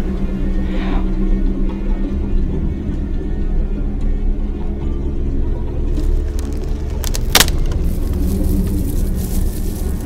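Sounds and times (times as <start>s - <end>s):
low rumbling drone: 0.0s - 10.0s
sharp snap: 7.0s - 7.8s.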